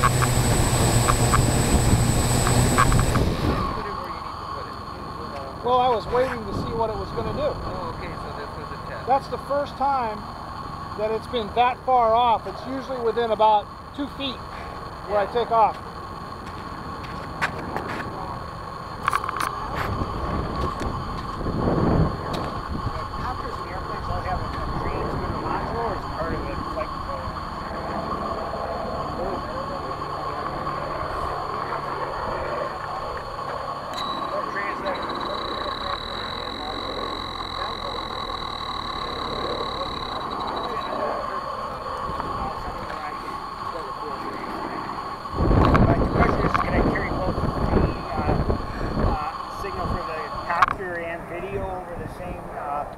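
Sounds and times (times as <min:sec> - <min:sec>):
drone motors and propellers: 0:00.0 - 0:52.9.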